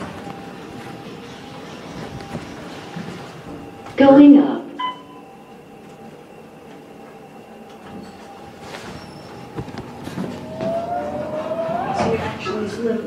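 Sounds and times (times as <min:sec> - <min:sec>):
elevator running noise: 0:00.0 - 0:13.0
thin rising whine: 0:09.0 - 0:13.0.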